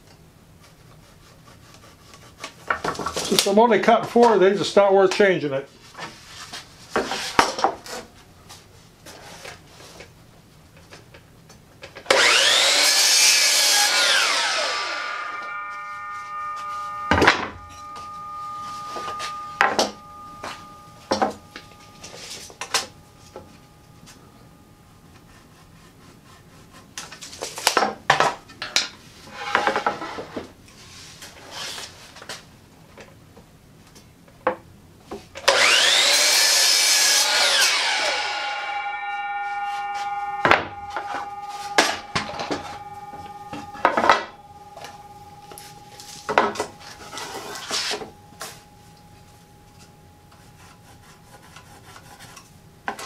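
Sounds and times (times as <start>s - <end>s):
saw blade coasting down whine: 12.1s - 26.6s, 35.4s - 52.5s
miter saw cutting board: 12.1s - 27.8s, 35.4s - 52.4s.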